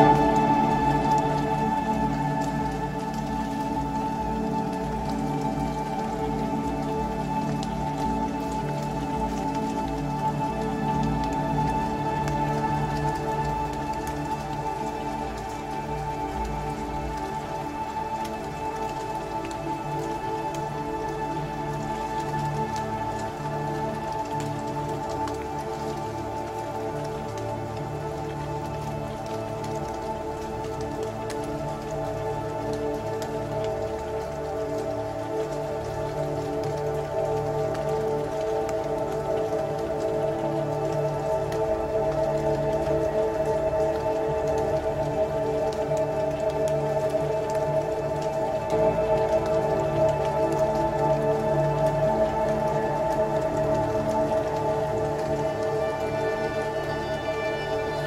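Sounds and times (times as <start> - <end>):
ambient electronic drone chords: 0.0 - 58.0
dense crackle of clicks: 0.0 - 58.0.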